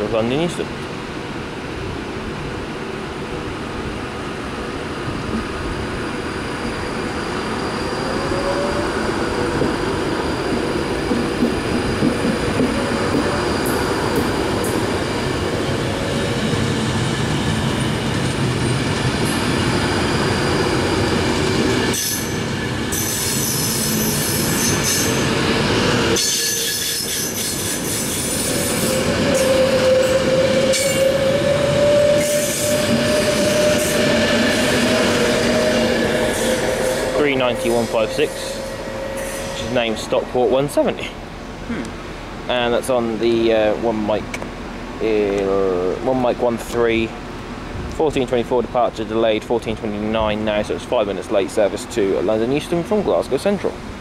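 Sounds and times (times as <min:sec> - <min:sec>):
train wheels on rails: 0:02.6 - 0:41.8
train motor whine: 0:06.6 - 0:41.0.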